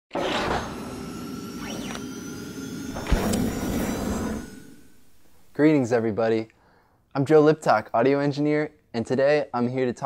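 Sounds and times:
low thump: 0:02.9 - 0:05.5.

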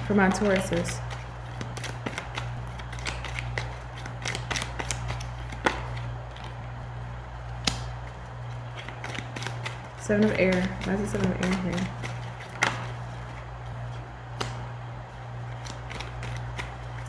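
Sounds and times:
cards being shuffled: 0:00.0 - 0:06.8, 0:07.4 - 0:14.8, 0:15.4 - 0:17.0
cards snapping: 0:00.2 - 0:06.8, 0:07.5 - 0:13.4, 0:14.3 - 0:14.8, 0:15.5 - 0:17.0.

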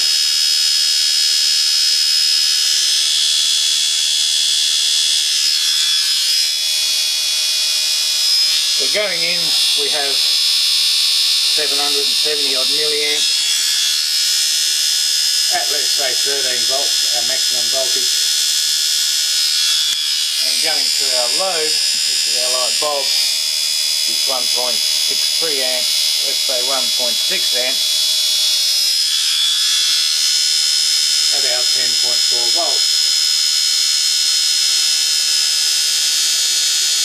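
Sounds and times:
small electric motor whining: 0:00.0 - 0:37.0.

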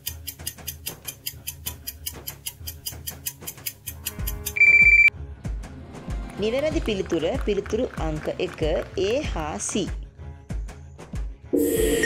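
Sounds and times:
fast clock ticking: 0:00.0 - 0:04.6
low background music: 0:00.1 - 0:12.0
loud electronic beep: 0:04.6 - 0:05.1, 0:11.6 - 0:12.0.

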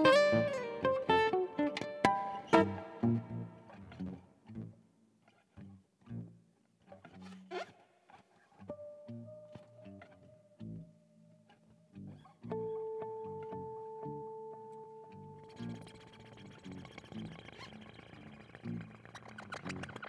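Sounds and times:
plucked acoustic guitar notes: 0:00.0 - 0:04.8
long held guitar tones: 0:00.0 - 0:04.9, 0:08.6 - 0:20.0.

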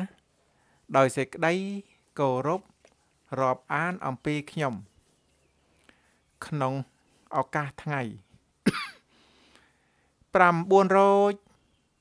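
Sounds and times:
man speaking: 0:00.9 - 0:02.7, 0:03.3 - 0:04.9, 0:06.4 - 0:08.2, 0:10.3 - 0:11.5
man coughing: 0:08.6 - 0:09.1.

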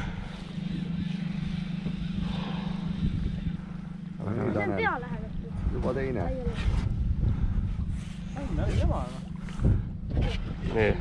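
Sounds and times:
boat motor humming: 0:00.0 - 0:11.0
wind and water hiss: 0:00.0 - 0:11.0.

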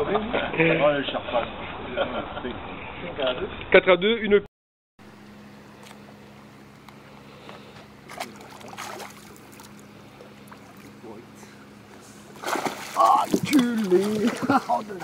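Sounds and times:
steady low hum: 0:05.0 - 0:15.0
fish splashing at water surface: 0:07.5 - 0:11.0, 0:12.3 - 0:15.0.

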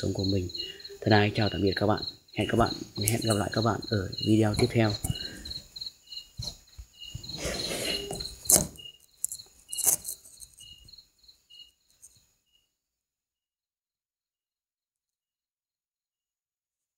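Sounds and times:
crickets chirping: 0:00.0 - 0:12.8.

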